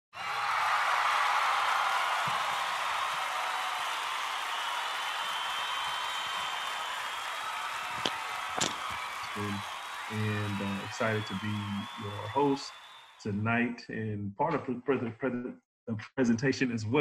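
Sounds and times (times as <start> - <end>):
audience applause: 0.1 - 13.4.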